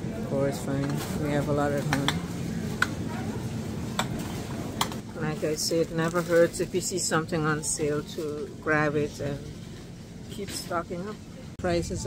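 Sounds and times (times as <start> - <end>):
store background hum: 0.0 - 12.0.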